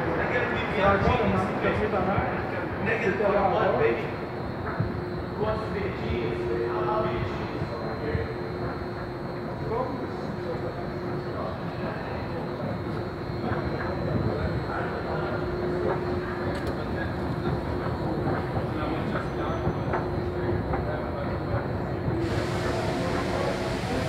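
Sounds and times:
station rumble: 0:00.0 - 0:24.0
bright hiss: 0:22.2 - 0:24.0.

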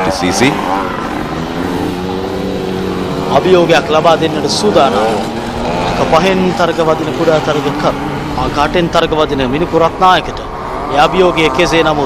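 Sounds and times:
commentator speaking: 0:00.0 - 0:01.0, 0:03.1 - 0:12.0
motorcycle engine running: 0:00.0 - 0:12.0.

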